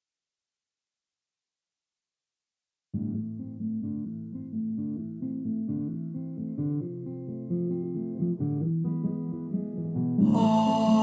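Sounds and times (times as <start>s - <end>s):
guitar playing notes: 3.0s - 11.0s.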